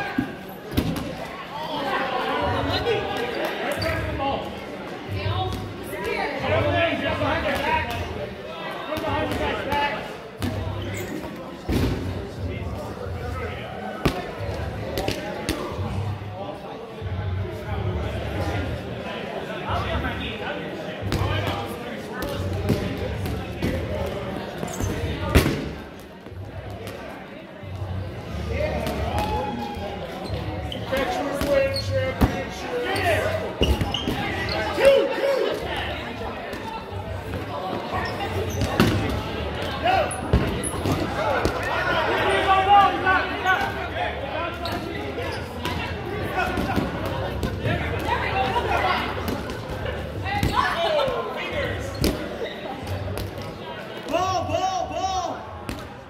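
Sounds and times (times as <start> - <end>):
rubber balls thudding in a gym: 0.0 - 1.2, 8.9 - 11.0, 22.2 - 24.2, 24.8 - 26.0, 33.6 - 35.0, 38.6 - 41.7.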